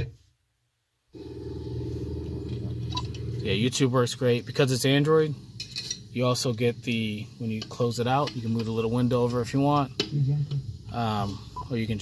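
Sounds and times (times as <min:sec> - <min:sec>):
steady low hum: 0:01.2 - 0:12.0.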